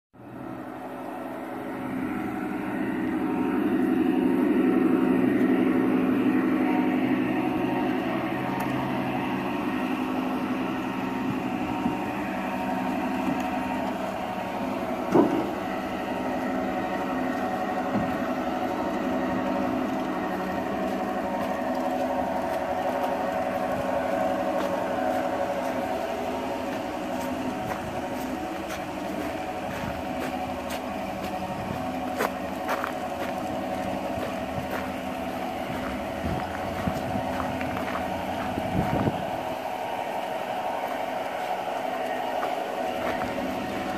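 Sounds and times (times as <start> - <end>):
wheels on rails: 0.2 - 43.9
model train motor hum: 5.4 - 43.9.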